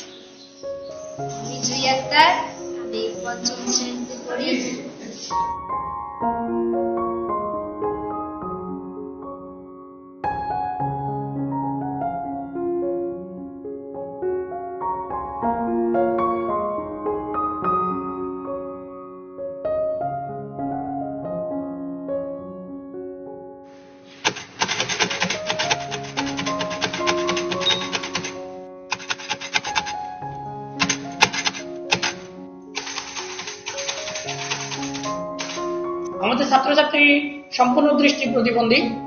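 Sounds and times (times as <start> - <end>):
slow soft piano music: 0.0 - 39.0
braille writer keys clicking: 24.2 - 30.0, 30.8 - 35.8.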